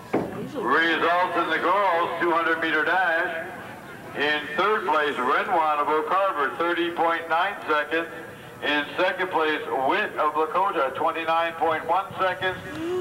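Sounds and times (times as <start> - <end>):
announcer speaking: 0.6 - 3.4, 4.2 - 12.6.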